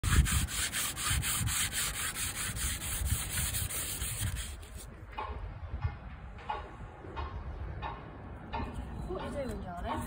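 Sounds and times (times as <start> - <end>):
hand sanding steel: 0.0 - 4.9.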